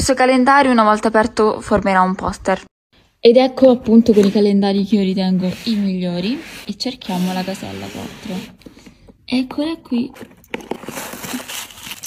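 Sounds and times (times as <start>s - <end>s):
cardboard drawer sliding: 5.4s - 8.6s
tissue paper rustling: 10.7s - 12.0s.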